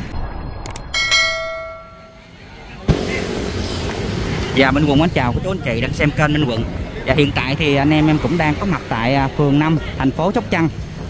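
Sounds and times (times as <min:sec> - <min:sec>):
street noise: 0:00.0 - 0:11.0
bell-like chime: 0:01.0 - 0:02.3
sudden thump: 0:02.9 - 0:04.0.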